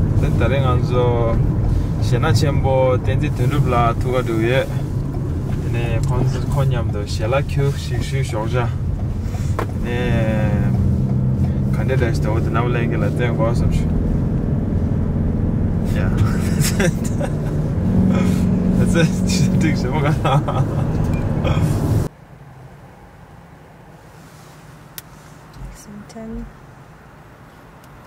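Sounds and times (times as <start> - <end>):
car cabin road noise: 0.0 - 28.0
people talking: 0.2 - 1.4, 2.0 - 4.8, 5.6 - 8.8, 9.8 - 10.8, 11.7 - 13.9, 15.9 - 17.5, 18.1 - 20.8, 21.4 - 21.7, 25.6 - 26.5.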